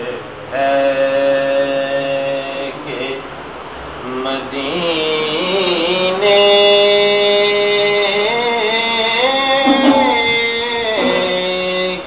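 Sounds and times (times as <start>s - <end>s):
man chanting melismatic phrase: 9.4s - 12.0s.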